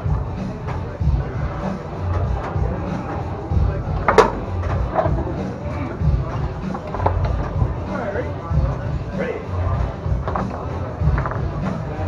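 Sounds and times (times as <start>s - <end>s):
background music with bass beat: 0.0s - 12.0s
foosball ball and rods clacking: 2.0s - 3.3s, 3.9s - 5.5s, 6.3s - 7.7s, 10.2s - 11.9s
foosball ball struck hard: 4.0s - 4.9s.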